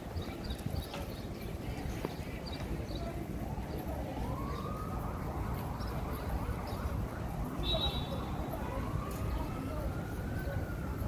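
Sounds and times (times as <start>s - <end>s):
low rumble of traffic: 0.0s - 11.0s
siren wailing: 4.2s - 11.0s.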